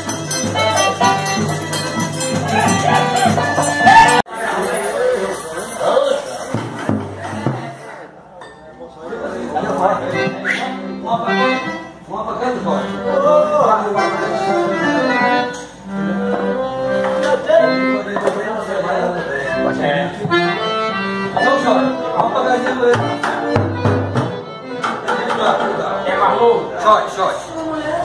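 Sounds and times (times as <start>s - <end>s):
piano accordion playing: 0.0s - 4.8s, 9.6s - 26.8s.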